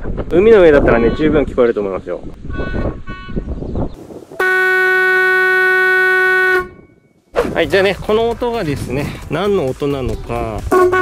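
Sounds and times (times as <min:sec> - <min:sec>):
electric horn blast: 0:04.4 - 0:06.8, 0:10.7 - 0:11.0.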